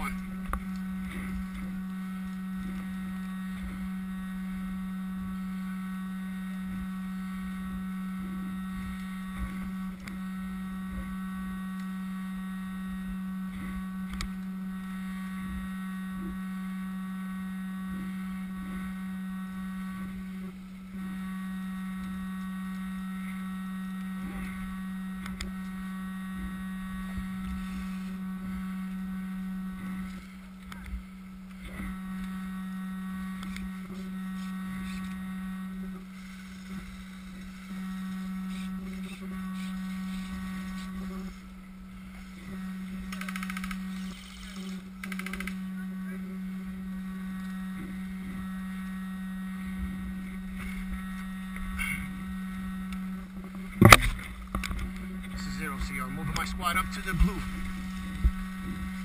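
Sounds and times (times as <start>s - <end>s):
electrical buzz: 0.0s - 59.0s.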